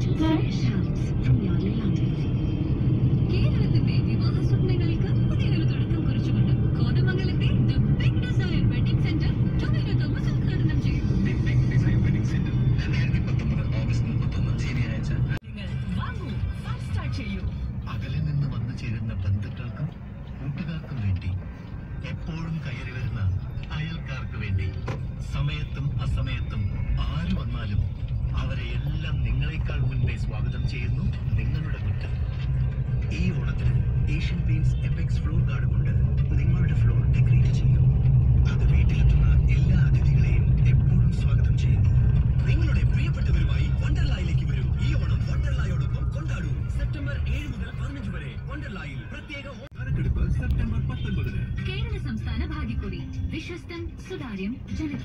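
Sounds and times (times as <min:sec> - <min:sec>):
car interior road rumble: 0:00.0 - 0:55.0.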